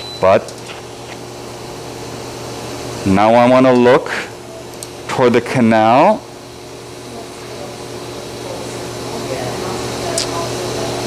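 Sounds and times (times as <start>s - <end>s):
equipment hum and hiss: 0.0s - 11.0s.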